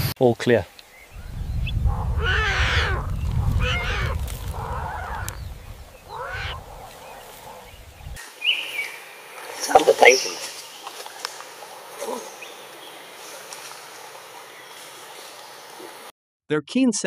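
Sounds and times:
low rumble: 0:01.2 - 0:06.9
animal calls with bending pitch: 0:01.2 - 0:07.9.

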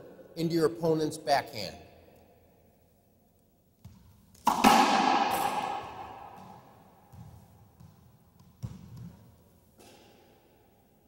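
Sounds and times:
ball crack against wall: 0:03.8 - 0:09.2, 0:09.8 - 0:10.2
ball thuds: 0:03.8 - 0:10.2
ball knock: 0:04.4 - 0:07.4.

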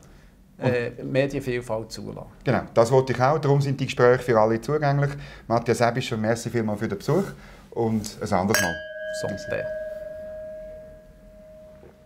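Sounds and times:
wine glass ringing: 0:08.5 - 0:12.0.

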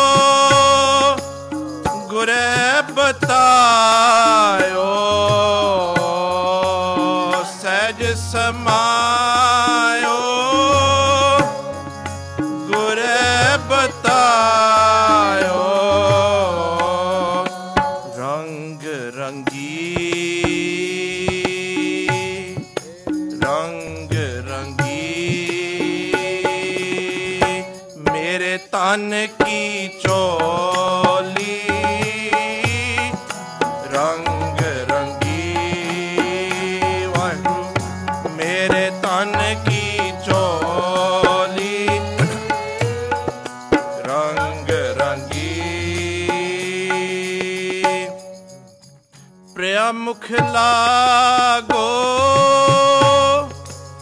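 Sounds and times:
person singing: 0:00.0 - 0:48.6, 0:49.6 - 0:54.0
harmonium chord: 0:00.0 - 0:54.0.

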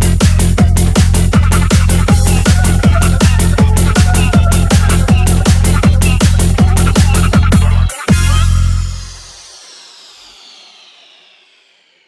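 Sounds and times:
downward noise sweep: 0:08.2 - 0:12.0.

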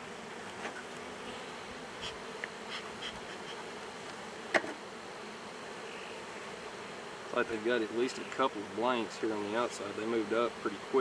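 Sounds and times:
honeybees humming: 0:00.0 - 0:11.0.

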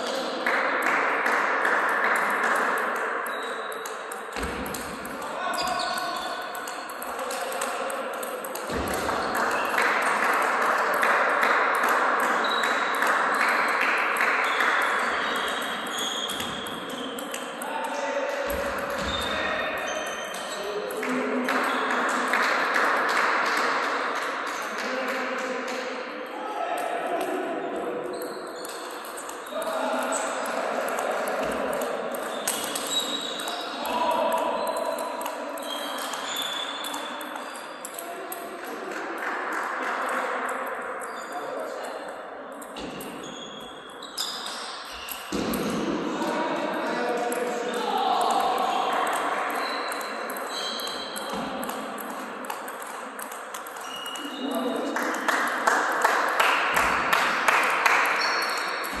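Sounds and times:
table tennis ball clicking: 0:48.4 - 0:54.3.

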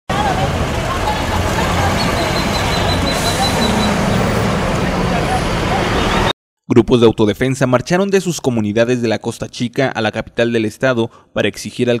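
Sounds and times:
traffic road noise: 0:00.1 - 0:06.3.

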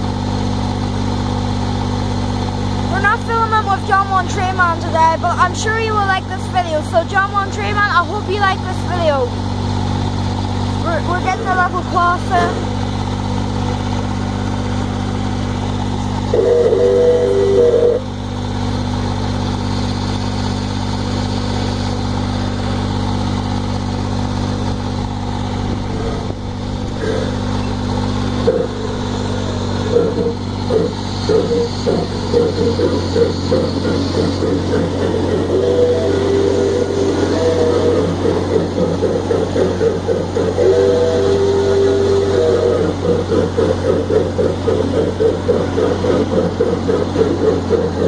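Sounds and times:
miniature train motor hum: 0:00.0 - 0:48.0
train rhythmic clatter: 0:24.6 - 0:48.0.

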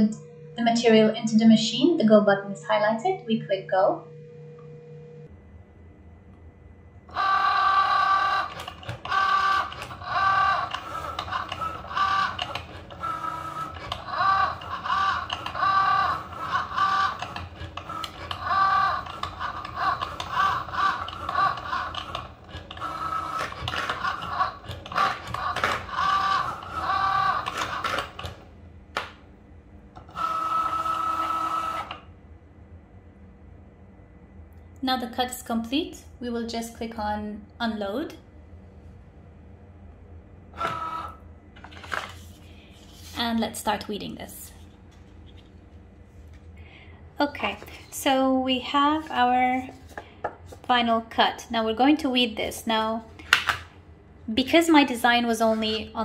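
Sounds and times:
cutting machine motors whining: 0:07.0 - 0:29.2, 0:29.9 - 0:32.1, 0:40.5 - 0:43.5.

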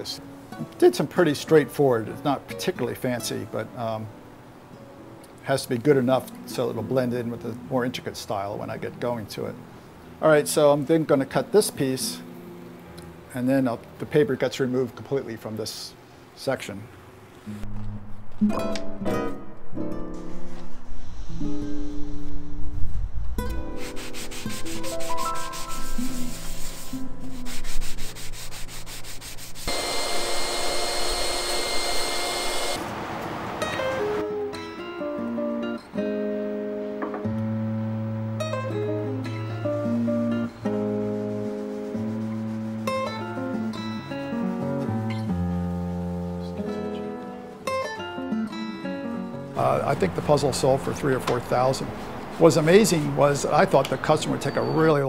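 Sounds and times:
guitar music: 0:00.0 - 0:14.0, 0:17.4 - 0:29.4, 0:33.6 - 0:55.0
power sander on wood: 0:28.3 - 0:32.8.

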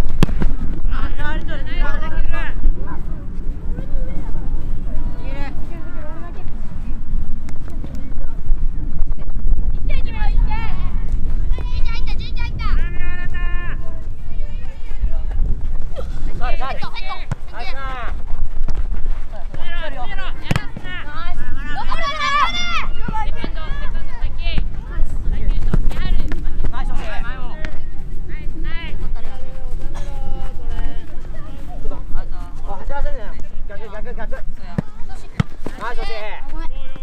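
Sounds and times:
sharp thuds of ball kicks: 0:00.0 - 0:00.9, 0:17.2 - 0:17.6, 0:18.4 - 0:21.0, 0:25.5 - 0:26.8, 0:34.7 - 0:36.0
soccer ball kick thuds: 0:00.0 - 0:01.5, 0:16.9 - 0:21.4, 0:22.5 - 0:27.8, 0:34.6 - 0:36.2
wind rumble on microphone: 0:00.0 - 0:20.1, 0:22.6 - 0:34.8
young players shouting: 0:19.7 - 0:24.4
children shouting: 0:21.8 - 0:23.1.

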